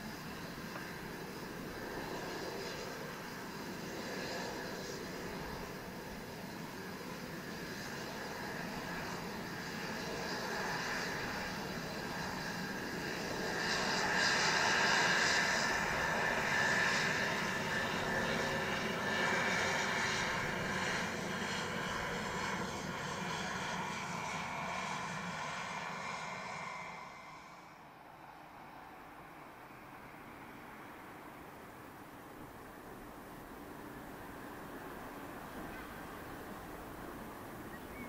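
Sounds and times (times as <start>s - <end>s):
propeller noise: 0.0s - 27.9s, 29.0s - 38.0s
turboprop engines whining: 0.0s - 38.0s.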